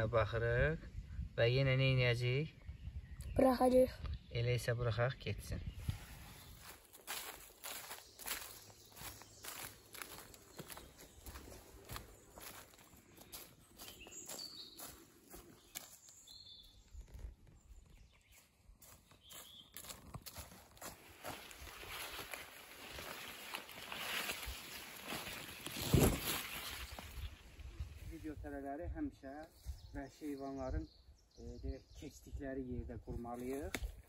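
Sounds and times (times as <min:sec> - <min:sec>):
footsteps on dry leaves: 0:05.8 - 0:16.4, 0:18.3 - 0:28.0.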